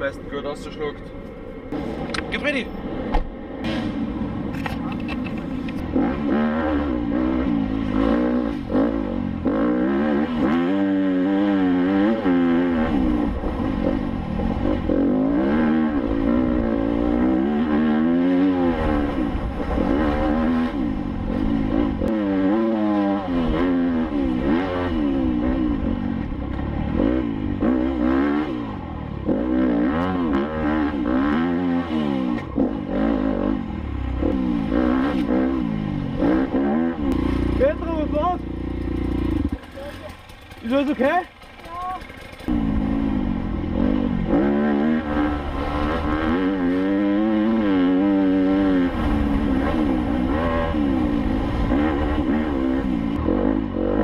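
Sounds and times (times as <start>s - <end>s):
dirt bike engine revving: 5.8s - 54.0s.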